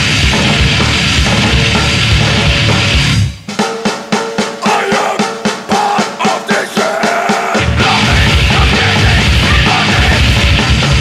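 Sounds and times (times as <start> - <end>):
grindcore band playing: 0.0 - 11.0
separate drum hits: 0.0 - 11.0.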